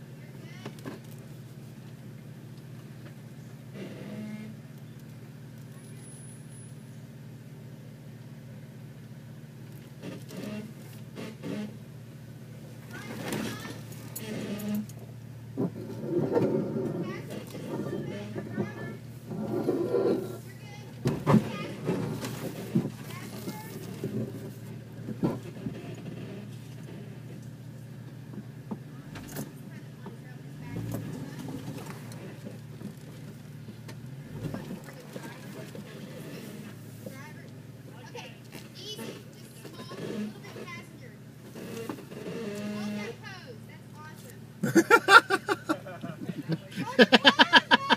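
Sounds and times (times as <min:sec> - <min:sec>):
off-road vehicle engine running: 0:00.0 - 0:47.9.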